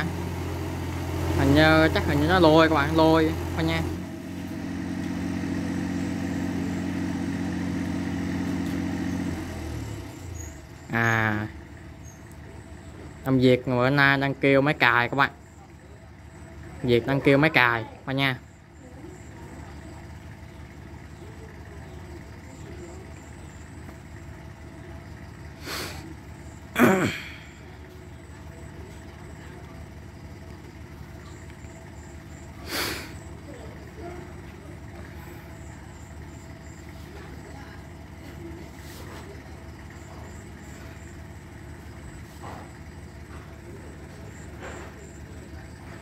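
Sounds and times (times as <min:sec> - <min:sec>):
tractor diesel engine running: 0:00.0 - 0:46.0.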